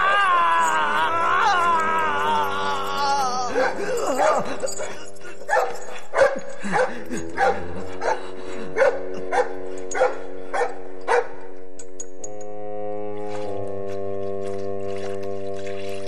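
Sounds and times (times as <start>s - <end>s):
orchestral film music: 0.0s - 16.0s
dog barking: 5.5s - 8.2s, 8.8s - 11.4s.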